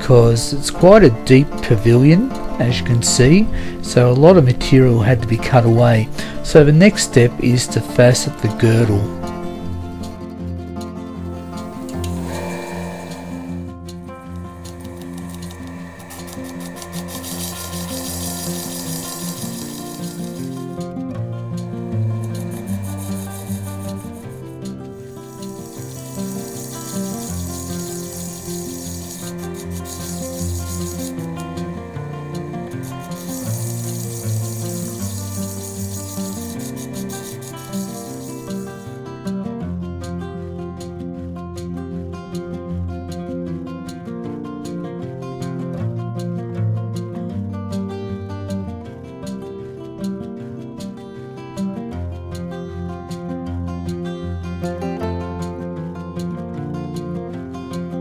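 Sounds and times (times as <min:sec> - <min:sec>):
background guitar music: 0:00.0 - 0:58.0
gem grinding on spinning lap: 0:11.5 - 0:39.0.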